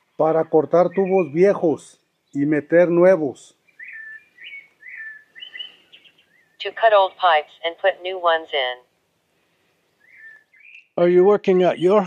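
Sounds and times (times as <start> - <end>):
bird chirping whistled notes: 3.7 - 6.6, 10.0 - 11.0.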